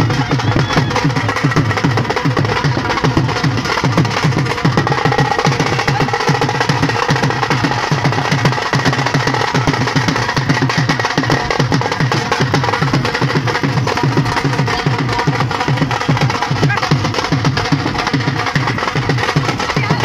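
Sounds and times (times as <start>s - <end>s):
dhol drums fast rhythm: 0.0s - 20.0s.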